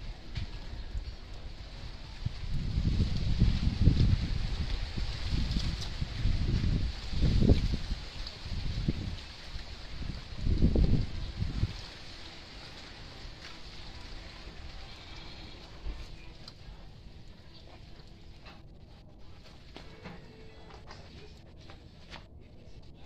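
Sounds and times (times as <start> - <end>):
wind buffeting microphone: 0.0 - 12.1.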